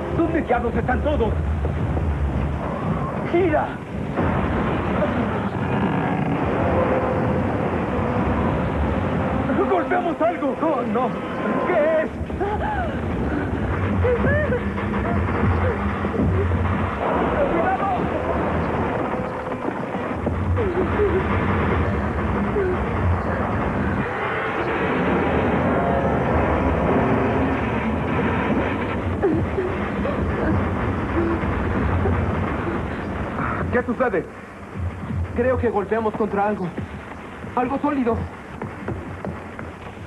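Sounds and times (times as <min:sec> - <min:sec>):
music: 0:00.0 - 0:40.0
scattered voices: 0:02.4 - 0:40.0.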